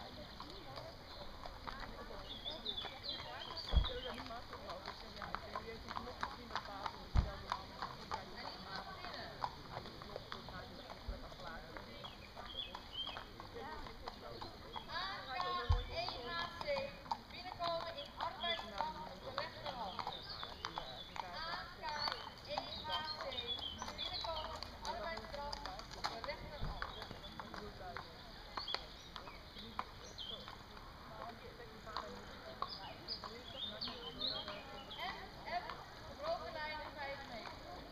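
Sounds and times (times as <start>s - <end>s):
faint voices talking: 0.0s - 37.9s.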